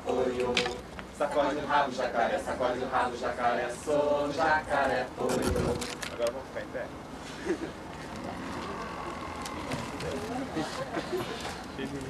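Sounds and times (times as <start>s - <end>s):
people shuffling and rustling: 7.1s - 12.0s.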